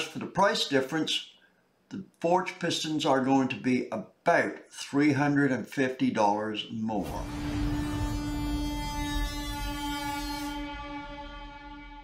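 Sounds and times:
rushing noise: 0:07.0 - 0:11.6
held horn-like note: 0:07.0 - 0:12.0.

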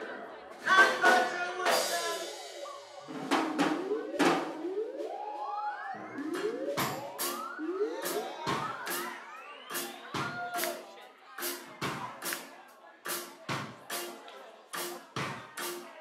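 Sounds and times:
crowd chatter: 0:00.0 - 0:16.0
siren-like synth sweeps: 0:03.1 - 0:10.0.

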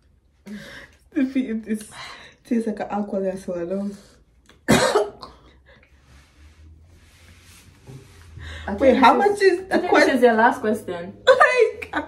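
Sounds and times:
woman coughing: 0:04.7 - 0:05.4.

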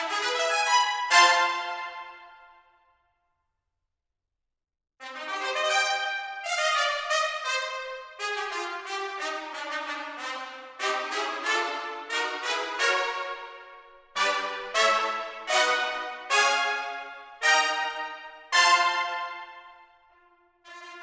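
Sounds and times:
trumpets playing short detached notes: 0:14.2 - 0:19.6.

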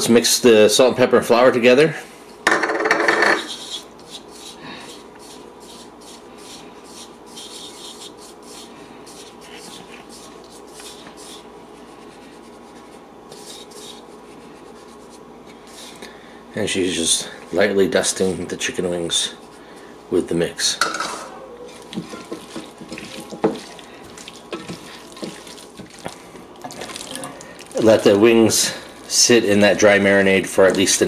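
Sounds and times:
fingers rubbing flour in bowl: 0:03.4 - 0:16.0, 0:21.7 - 0:26.0.

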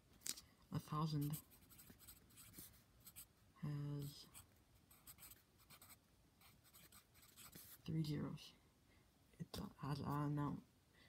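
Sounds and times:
pencil scratching on paper: 0:01.1 - 0:03.3, 0:04.0 - 0:07.8.

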